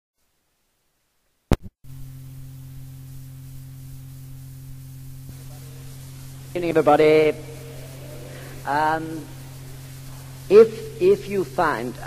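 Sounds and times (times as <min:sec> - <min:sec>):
low hum and hiss: 0:00.3 - 0:12.0.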